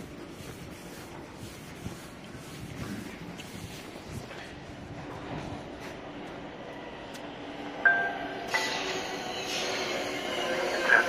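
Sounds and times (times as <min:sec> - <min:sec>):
train wheels rumbling on rails: 0:00.0 - 0:11.0
train whining tones: 0:06.2 - 0:11.0.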